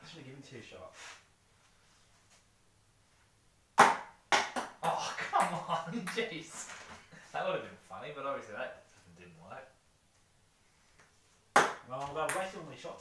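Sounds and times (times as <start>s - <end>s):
men laughing and exclaiming: 4.8s - 6.4s.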